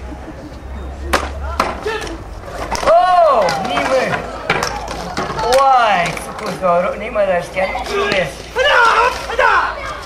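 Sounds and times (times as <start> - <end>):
man shouting loudly: 7.7 - 9.8.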